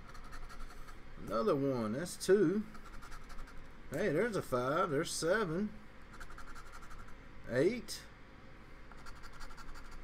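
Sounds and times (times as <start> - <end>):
scratching a lottery ticket: 0.0 - 0.9, 9.0 - 10.0.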